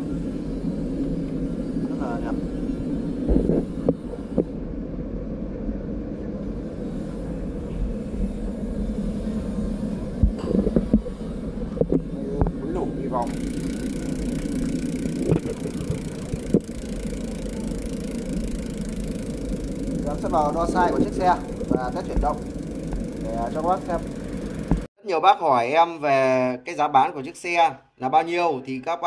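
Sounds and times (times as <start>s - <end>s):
low rumble and hum: 0.0s - 24.9s.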